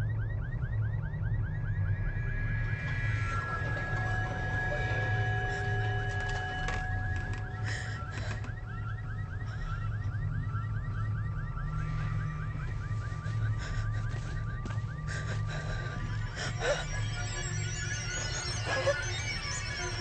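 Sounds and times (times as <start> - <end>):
steady low rumble: 0.0 - 20.0
held synth tones: 1.3 - 20.0.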